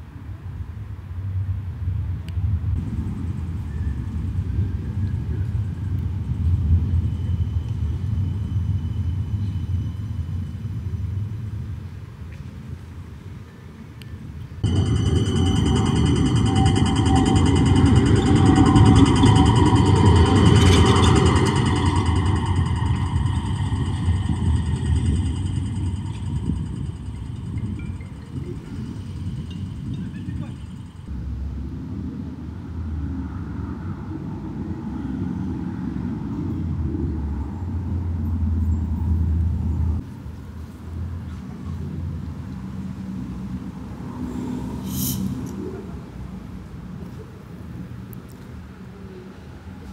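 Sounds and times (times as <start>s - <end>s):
tram drive whine: 2.3s - 12.2s, 14.6s - 41.1s
wheels rumbling on rail: 14.6s - 49.9s.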